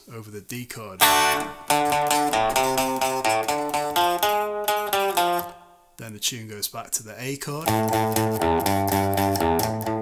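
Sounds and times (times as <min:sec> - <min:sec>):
electric guitar surf riff: 0:01.0 - 0:05.7, 0:07.6 - 0:10.0.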